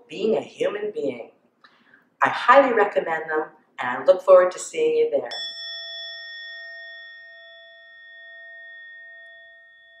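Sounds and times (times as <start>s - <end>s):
meditation bell ringing: 5.3s - 10.0s.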